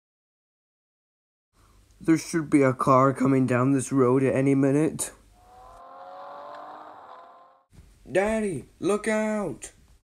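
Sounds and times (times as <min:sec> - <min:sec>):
car driving by: 0:05.4 - 0:07.7.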